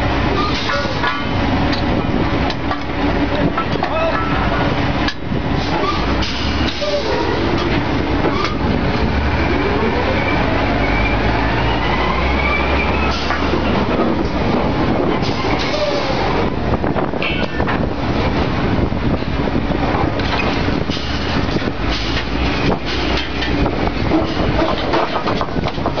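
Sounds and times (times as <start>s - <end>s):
rising machine whine: 9.0s - 13.7s
metal pipe clanks: 17.2s - 17.8s.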